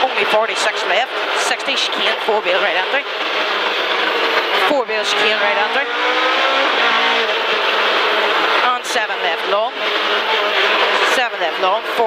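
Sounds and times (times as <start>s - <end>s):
car engine running hard: 0.0s - 12.0s.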